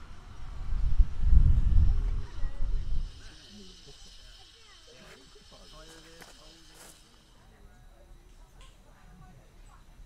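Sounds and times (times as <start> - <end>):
high hiss: 0.0 - 8.8
people chattering: 2.0 - 10.0.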